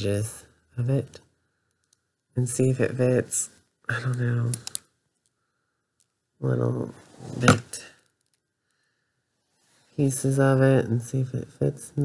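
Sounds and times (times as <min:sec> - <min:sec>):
plastic doll parts clicking: 0:04.5 - 0:04.9.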